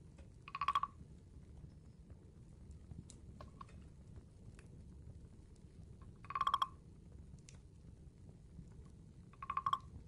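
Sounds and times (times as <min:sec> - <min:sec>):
faint light ticks: 0:00.0 - 0:10.0
wooden frog rasping croak: 0:00.4 - 0:01.0, 0:06.2 - 0:06.8, 0:09.4 - 0:10.0.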